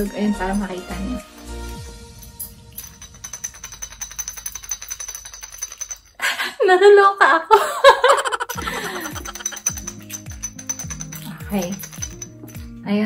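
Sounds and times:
paper slips rattling in glass bottle: 2.8s - 6.2s, 8.2s - 12.6s
woman laughing: 6.2s - 9.9s.

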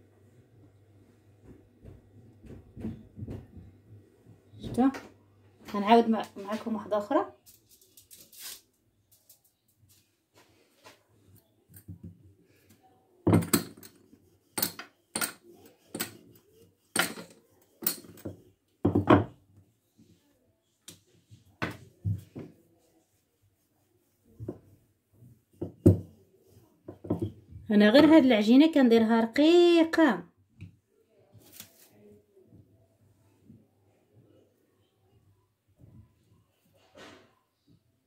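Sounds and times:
rolling pin rolling dough: 13.3s - 20.2s, 20.9s - 28.2s.

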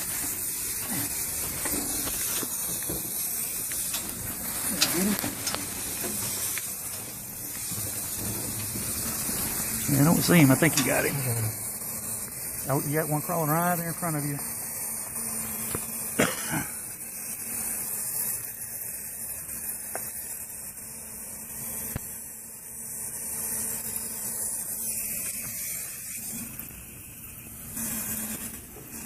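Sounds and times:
steady high hiss: 0.0s - 29.0s
person coughing: 16.2s - 16.8s.

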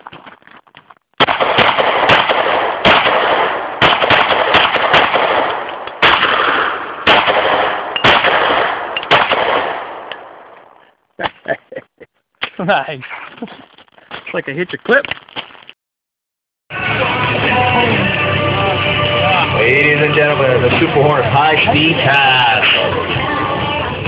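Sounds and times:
rapid pistol shots: 1.2s - 10.5s.

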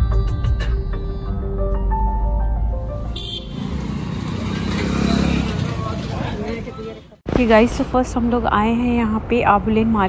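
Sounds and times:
motorbikes and cars passing: 2.9s - 7.2s
people's voices: 4.4s - 10.0s.

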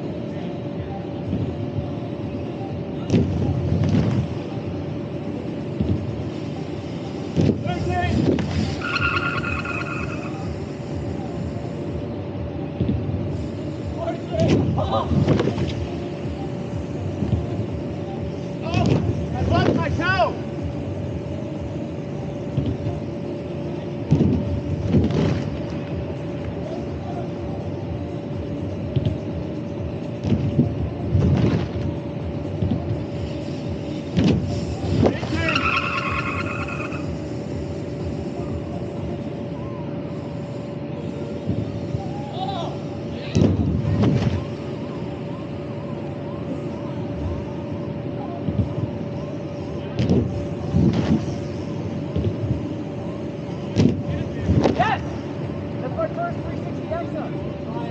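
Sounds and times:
air blower humming: 0.0s - 57.9s
bikes landing on airbag: 3.1s - 4.4s, 7.3s - 7.6s, 14.4s - 15.8s, 18.7s - 19.9s, 24.0s - 25.8s, 30.2s - 33.3s, 34.0s - 35.4s, 43.2s - 44.5s, 50.0s - 52.7s, 53.7s - 54.9s.

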